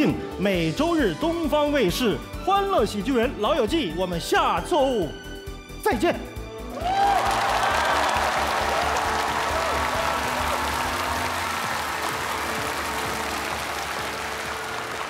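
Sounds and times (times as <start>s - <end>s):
audience applauding and cheering: 6.6s - 15.0s
closing music: 6.7s - 15.0s
audience shouts: 6.8s - 12.8s.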